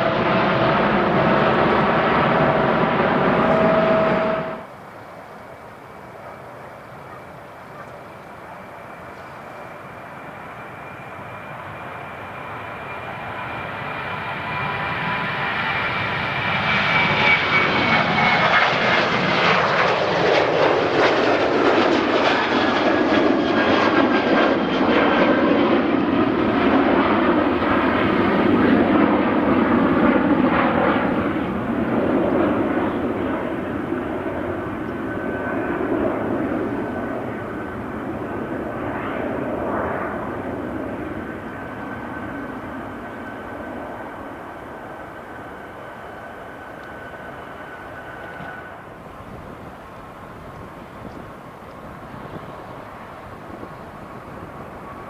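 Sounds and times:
high fan whine: 0.0s - 10.4s
jet airliner taking off: 0.0s - 55.0s.

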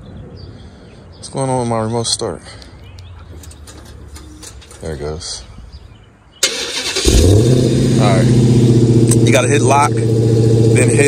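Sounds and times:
starter motor cranking: 6.4s - 7.5s
car engine idling: 6.4s - 11.0s.

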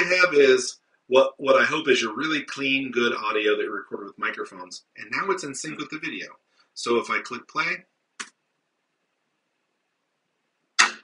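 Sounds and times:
sharp hand clap: 10.8s - 11.0s.

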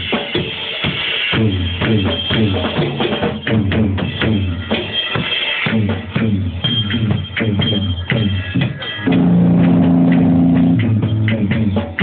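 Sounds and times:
drum machine beat: 0.0s - 12.0s
low bass tone: 5.7s - 11.7s.

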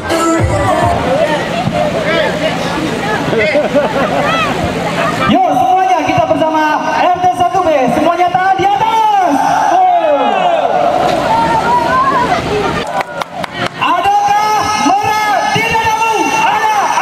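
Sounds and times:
crowd babble: 0.0s - 8.6s, 9.2s - 17.0s.

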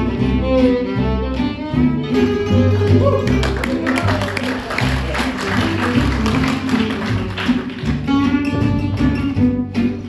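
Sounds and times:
acoustic guitar lead line: 0.0s - 10.0s
gypsy jazz band playing: 0.0s - 10.0s.

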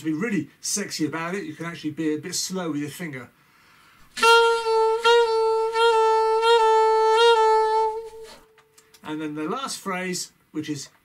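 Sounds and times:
alto saxophone sliding notes: 4.0s - 8.8s.

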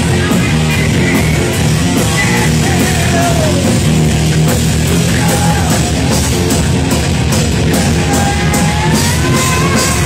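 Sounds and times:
singer's voice: 0.0s - 4.1s, 4.8s - 6.3s, 7.6s - 10.0s
live heavy metal band: 0.0s - 10.0s.

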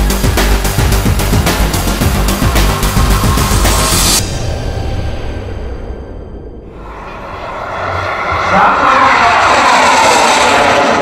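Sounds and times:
jet rush and whine: 1.4s - 11.0s
model jet turbine passing overhead: 6.8s - 11.0s.

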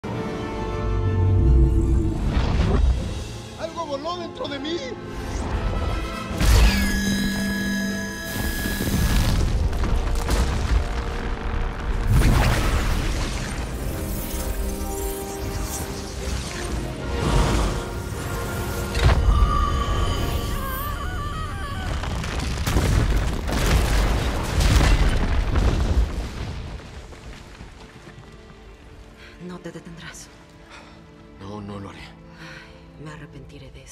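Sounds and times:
orchestral score with held chords: 0.0s - 2.3s.

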